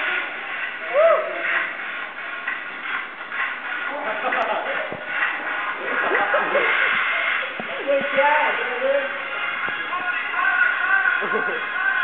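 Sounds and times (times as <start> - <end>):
background voices chattering: 0.0 - 12.0.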